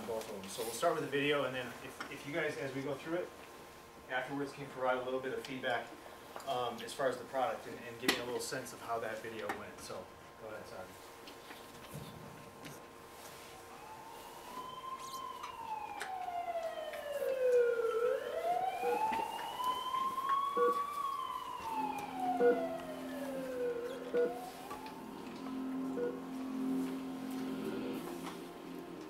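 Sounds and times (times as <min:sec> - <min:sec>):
siren wailing: 0:13.3 - 0:29.0
sustained music notes: 0:14.0 - 0:29.0.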